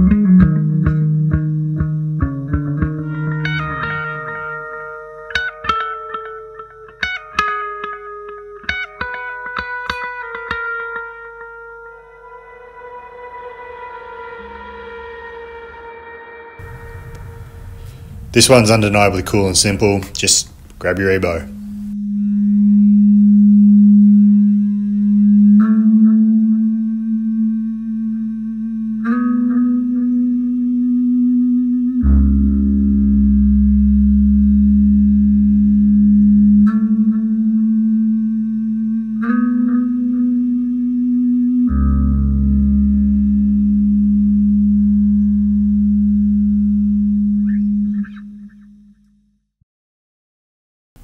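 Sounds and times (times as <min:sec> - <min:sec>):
sustained electric guitar notes: 0:00.0 - 0:49.3.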